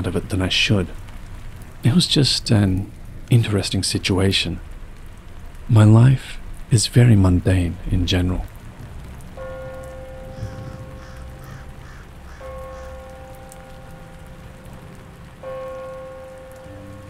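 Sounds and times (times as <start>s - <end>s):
rain: 0.0s - 17.0s.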